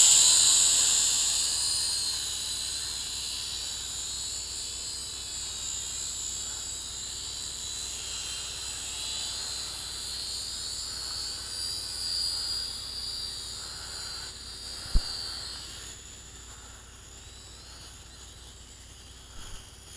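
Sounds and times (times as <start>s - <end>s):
drone propellers whining: 0.0s - 18.6s.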